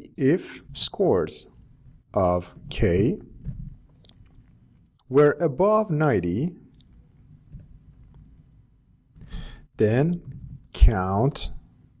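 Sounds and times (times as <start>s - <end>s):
man speaking: 0.0s - 3.4s, 5.1s - 6.7s, 9.8s - 11.6s.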